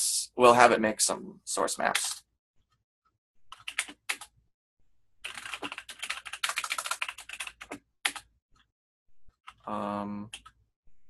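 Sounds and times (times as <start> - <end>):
typing on computer keyboard: 3.6 - 4.3, 5.2 - 8.3.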